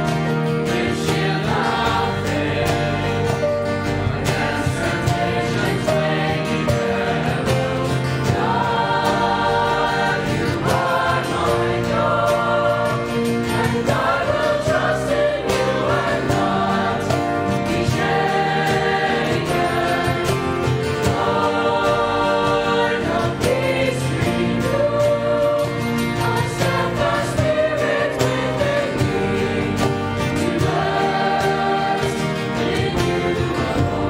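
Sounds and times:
choir singing: 0.0s - 34.0s.

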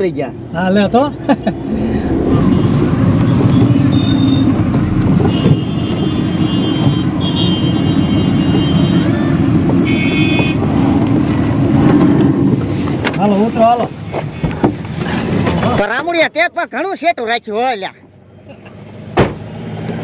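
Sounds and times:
car engine and road rumble: 0.0s - 20.0s
car horns honking: 2.3s - 10.8s.

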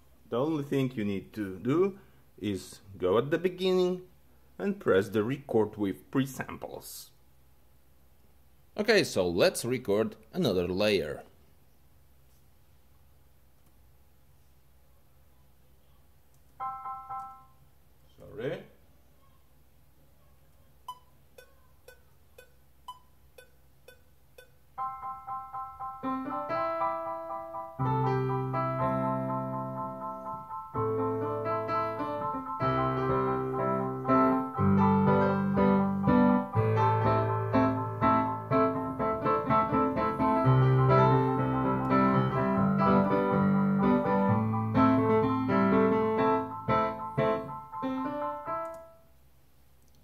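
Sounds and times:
digital piano playing: 16.6s - 17.6s, 20.9s - 49.1s.

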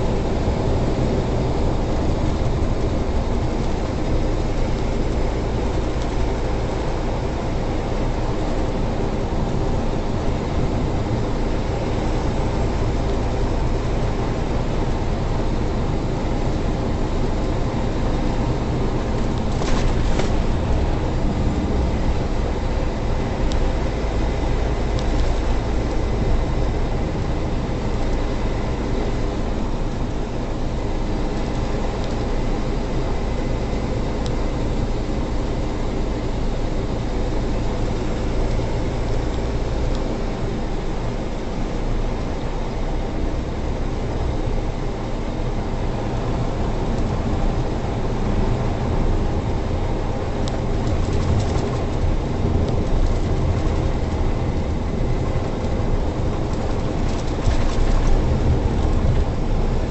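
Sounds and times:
truck engine and road noise: 0.0s - 59.9s.

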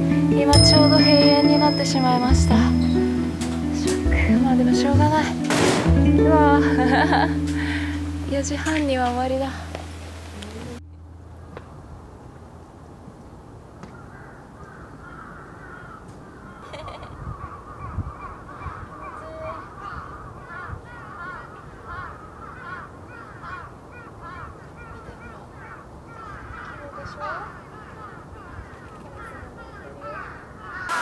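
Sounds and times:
low outdoor rumble: 0.0s - 13.8s
flock of birds calling: 14.0s - 31.0s.

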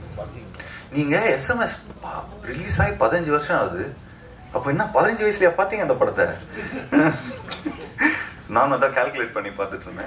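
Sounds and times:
man speaking: 0.1s - 6.4s
man chuckling: 6.5s - 8.4s.

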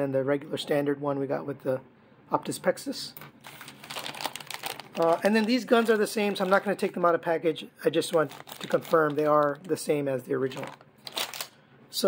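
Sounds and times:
plastic bags crinkling: 3.4s - 7.1s, 8.0s - 9.8s, 10.4s - 11.6s.

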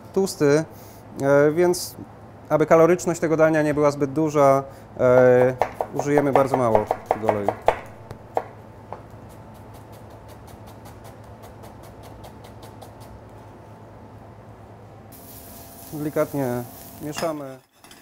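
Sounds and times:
onion sizzling in hot oil: 15.1s - 17.6s.

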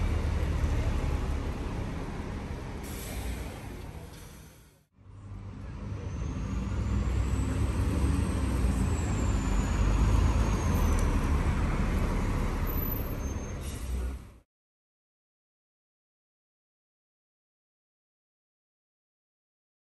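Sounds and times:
bus diesel engine rumbling: 0.0s - 14.4s
air brake hiss: 2.8s - 4.8s, 13.4s - 14.1s.

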